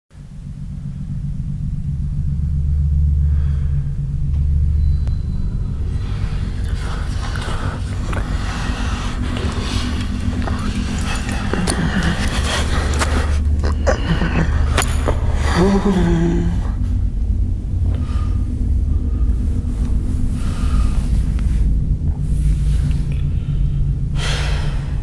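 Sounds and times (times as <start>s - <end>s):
deep rumbling horror score drone: 0.1s - 25.0s
scratchy crackling texture: 5.8s - 23.7s.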